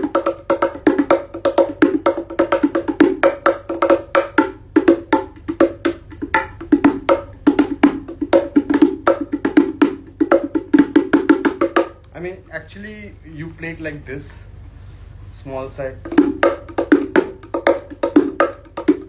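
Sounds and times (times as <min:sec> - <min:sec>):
wooden hand drums played fast: 0:00.0 - 0:12.2, 0:16.0 - 0:19.0.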